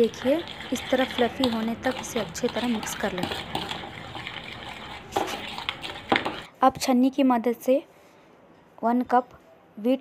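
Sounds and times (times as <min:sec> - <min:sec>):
wet swishing and scraping in bowl: 0:00.0 - 0:06.5.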